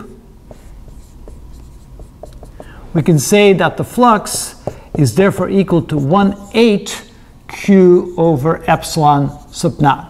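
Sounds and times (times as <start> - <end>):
marker pen writing on whiteboard: 0.0 - 6.7.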